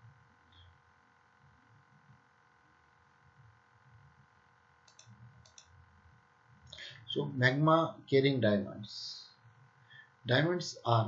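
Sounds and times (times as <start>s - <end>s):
faint steady hum: 0.0s - 11.0s
computer mouse clicks: 4.8s - 5.8s.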